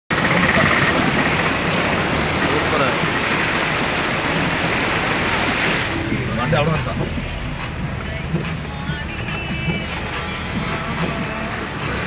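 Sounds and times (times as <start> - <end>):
floodwater rushing: 0.1 - 12.0.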